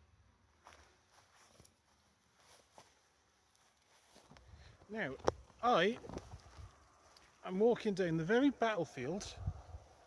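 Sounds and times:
faint soft rustles: 0.6s - 7.5s.

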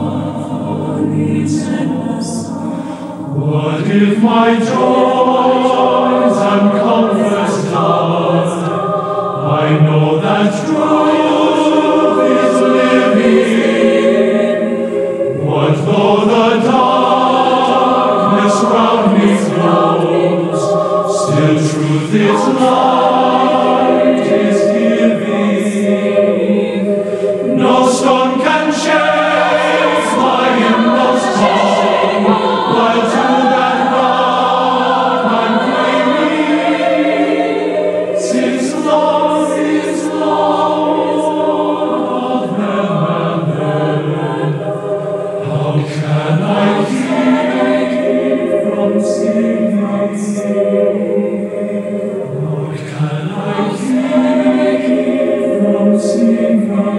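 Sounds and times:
choir singing: 0.0s - 56.9s.

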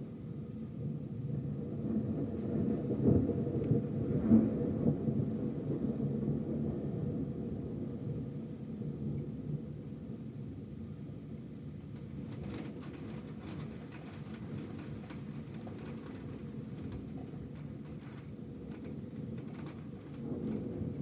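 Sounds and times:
rolling thunder: 0.7s - 21.0s
rain falling: 11.3s - 21.0s.

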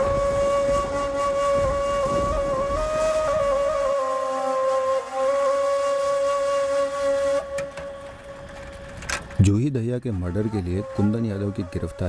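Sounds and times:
held flute note: 0.0s - 9.0s, 10.2s - 12.0s.

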